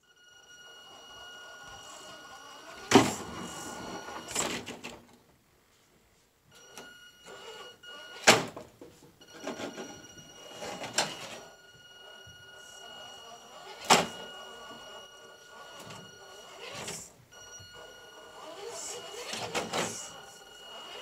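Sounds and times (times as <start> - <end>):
small electric motor whining: 0.6 - 4.4, 9.7 - 21.0.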